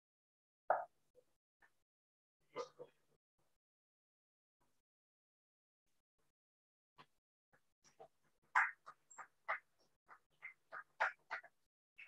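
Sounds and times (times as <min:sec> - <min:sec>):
people clapping: 0:07.9 - 0:12.0.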